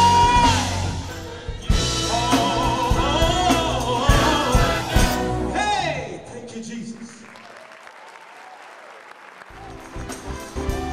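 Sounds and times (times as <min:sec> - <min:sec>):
gospel choir singing: 0:00.0 - 0:05.9
live band playing: 0:00.0 - 0:06.0, 0:09.5 - 0:10.9
audience applauding: 0:06.8 - 0:10.9.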